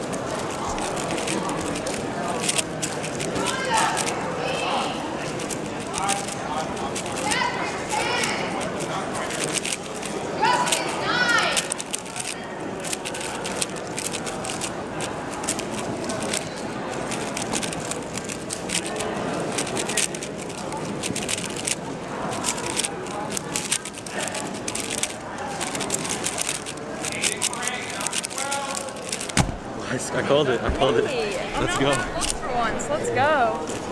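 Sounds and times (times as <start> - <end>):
plastic puzzle cube clicking: 0.0 - 29.8, 31.6 - 32.4
chatter of large hall: 0.0 - 33.9.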